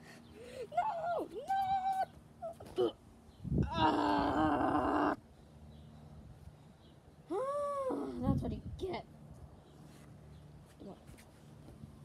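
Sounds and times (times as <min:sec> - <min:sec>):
person groaning cry: 0:03.6 - 0:05.2.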